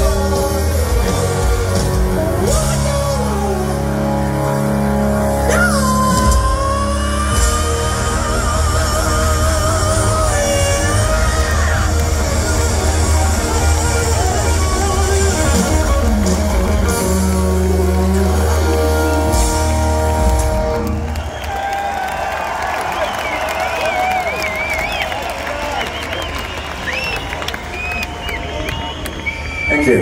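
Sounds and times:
live hard rock band: 0:00.0 - 0:21.6.

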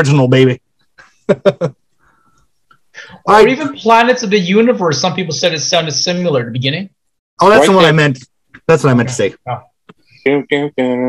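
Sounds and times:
man laughing: 0:01.0 - 0:01.7.

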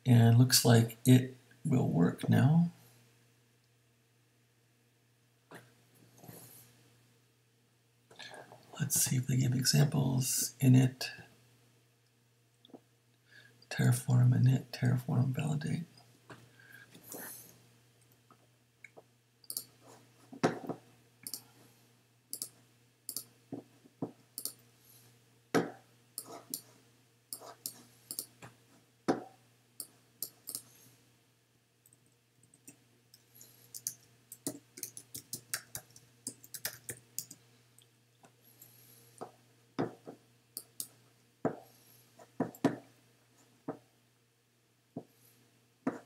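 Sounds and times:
faint low hum: 0:00.0 - 0:46.0
mouse clicks: 0:22.3 - 0:23.3, 0:27.3 - 0:28.3.

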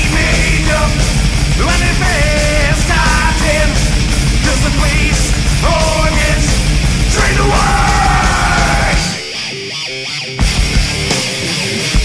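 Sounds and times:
heavy metal band playing: 0:00.0 - 0:12.0
person yelling vocal: 0:07.1 - 0:09.2.

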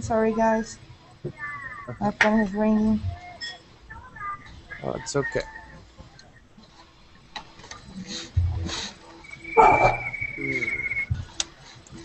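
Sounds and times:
phone ringing: 0:09.2 - 0:11.1.

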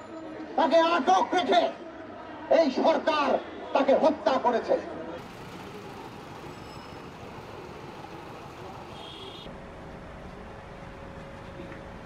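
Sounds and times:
street noise: 0:00.0 - 0:12.0
motor vehicle humming: 0:05.2 - 0:12.0.

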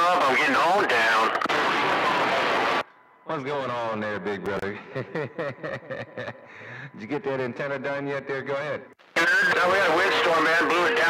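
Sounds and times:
man's voice over cb radio: 0:00.0 - 0:01.4, 0:09.2 - 0:11.0
radio channel hiss: 0:09.0 - 0:11.0.

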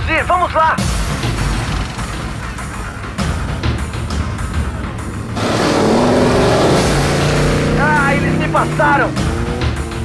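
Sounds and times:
car engine revving past: 0:01.2 - 0:10.0.

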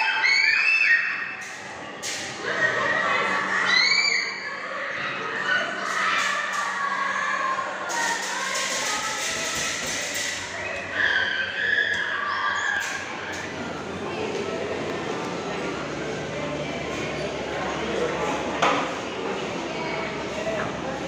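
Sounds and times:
people chattering: 0:01.1 - 0:21.0.

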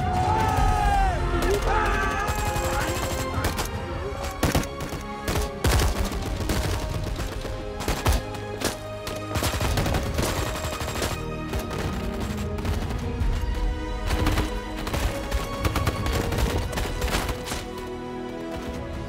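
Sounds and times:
rifle and machine-gun shots: 0:04.4 - 0:13.0.

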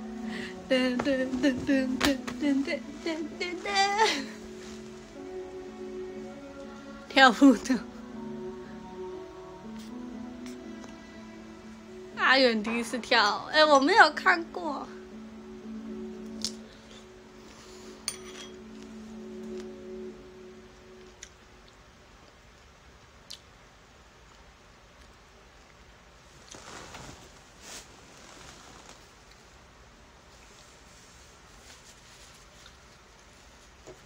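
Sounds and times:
faint music: 0:00.0 - 0:34.0
metal fork clinking on dish: 0:18.1 - 0:18.6.

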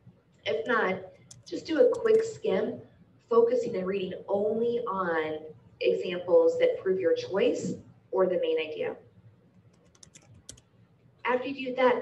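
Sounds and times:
keyboard keys clicking: 0:09.8 - 0:10.6.

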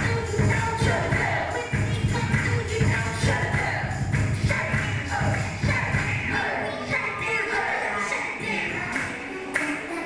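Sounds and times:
dance music over loudspeakers: 0:00.0 - 0:10.0.

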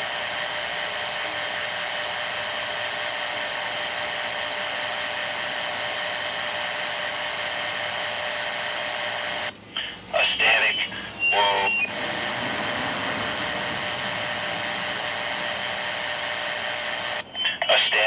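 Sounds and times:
radio static hiss: 0:00.0 - 0:18.0.

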